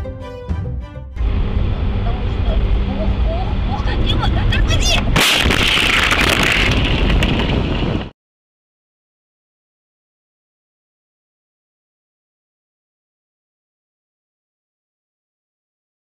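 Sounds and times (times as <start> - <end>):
vehicle road noise rumble: 1.2 - 8.1
harsh crunching and grinding: 5.0 - 8.1
loud collision impact: 5.1 - 8.1.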